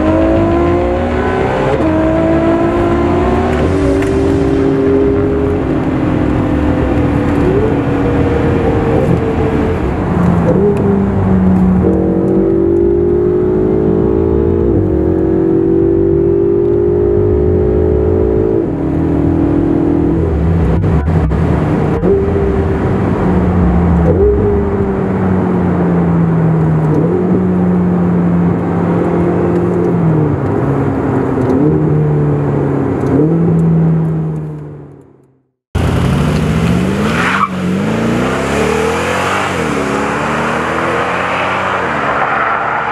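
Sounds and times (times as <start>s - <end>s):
car engine revving: 0.0s - 35.0s, 35.8s - 42.9s
car engine droning: 0.0s - 42.9s.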